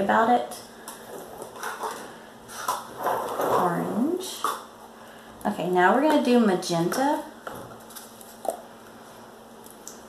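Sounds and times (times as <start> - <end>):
plastic cups rustling and clicking: 0.8 - 4.7.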